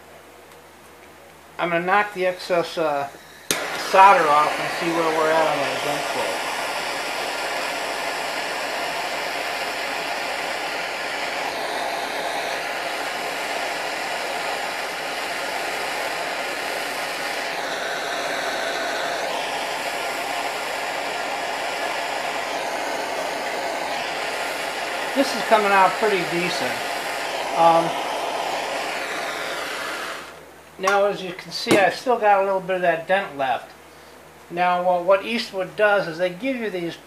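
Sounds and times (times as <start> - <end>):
gas torch hissing: 1.7 - 33.4.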